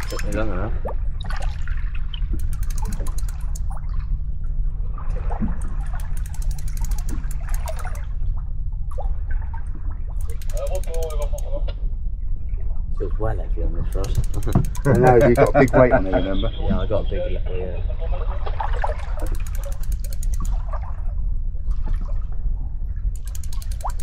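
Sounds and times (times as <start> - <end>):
fishing reel ticking: 0.0 - 0.6, 2.3 - 3.8, 5.9 - 8.1, 10.2 - 11.6, 13.9 - 15.9, 19.2 - 20.7, 23.2 - 24.0
person speaking: 0.0 - 0.8, 10.4 - 11.7, 13.1 - 18.0
steady low rumble: 0.0 - 24.0.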